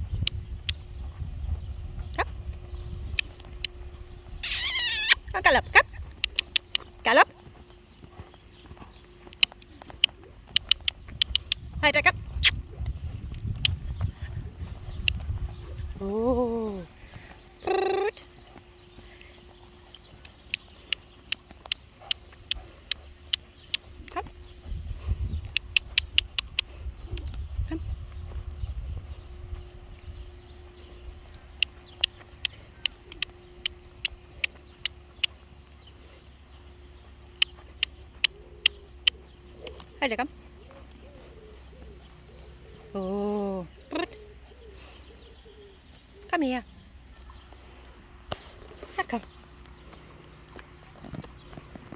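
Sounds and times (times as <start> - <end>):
horse hooves thudding on sand: 0.0 - 44.4, 47.2 - 51.9
horse hooves clicking: 0.0 - 51.9.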